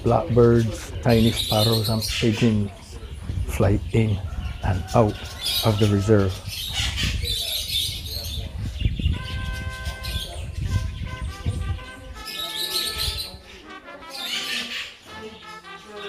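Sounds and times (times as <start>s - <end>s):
parakeets chirping and screeching: 0.0s - 16.0s.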